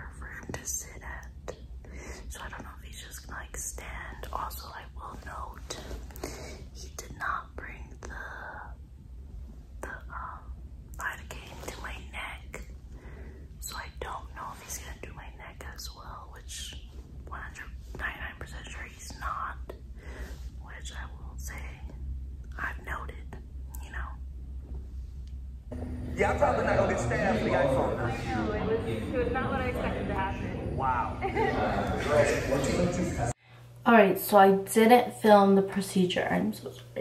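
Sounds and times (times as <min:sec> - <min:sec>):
woman whispering: 0:00.0 - 0:08.8, 0:09.8 - 0:12.7, 0:13.6 - 0:24.2
low steady hum: 0:00.0 - 0:37.0.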